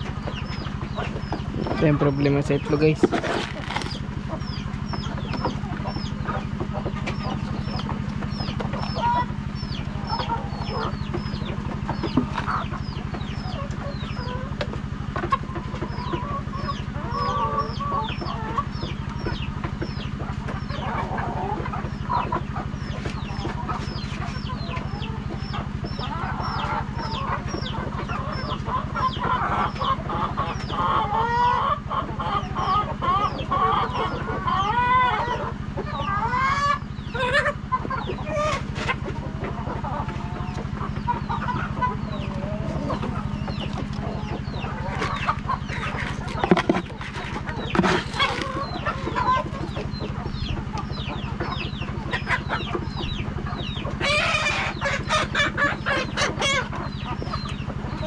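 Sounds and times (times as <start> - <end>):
hens clucking and squawking: 0.0 - 58.0.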